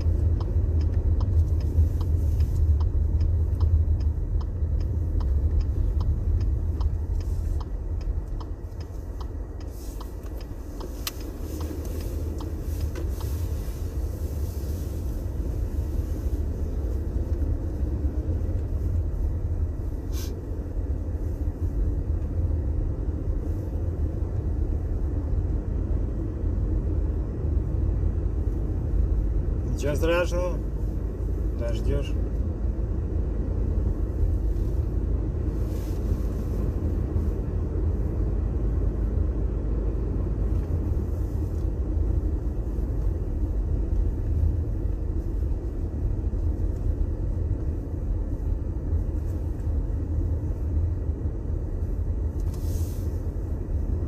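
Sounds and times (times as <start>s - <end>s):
light regular ticking: 0.0s - 14.0s
low rumble of engine and road: 0.0s - 54.0s.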